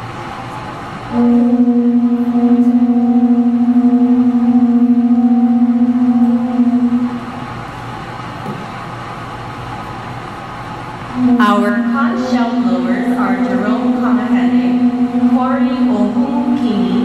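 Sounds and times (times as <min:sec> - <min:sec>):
murmur of hall: 0:00.0 - 0:17.0
conch-shell trumpets blowing: 0:01.1 - 0:07.2.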